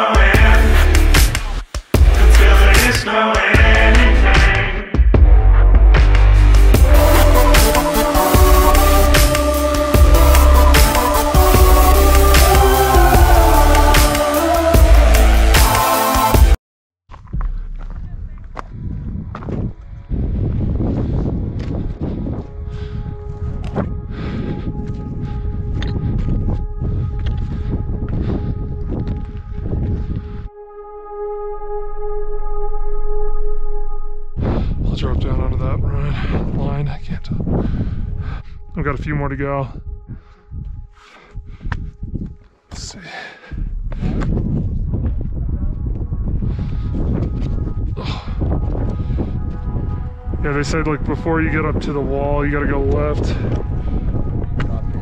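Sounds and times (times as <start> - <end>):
held musical chord: 6.7 - 16.5, 30.5 - 34.4
wind buffeting microphone: 17.1 - 30.5, 34.4 - 42.9, 43.5 - 55.0.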